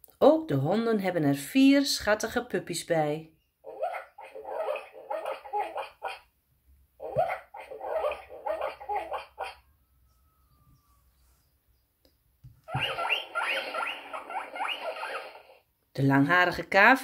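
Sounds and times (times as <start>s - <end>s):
recorded guinea pig squeaking: 3.6s - 6.3s, 7.0s - 9.7s, 12.7s - 15.6s
recorded dogs barking: 3.7s - 6.3s, 7.0s - 9.8s.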